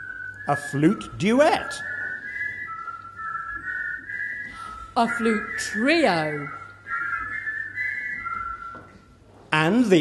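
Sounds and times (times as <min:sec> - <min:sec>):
people whistling in harmony: 0:00.0 - 0:10.0.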